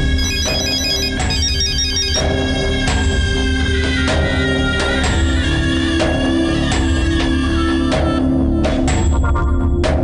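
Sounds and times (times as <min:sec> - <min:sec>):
background music: 0:00.0 - 0:10.0
mobile phone ringtone: 0:00.2 - 0:02.4.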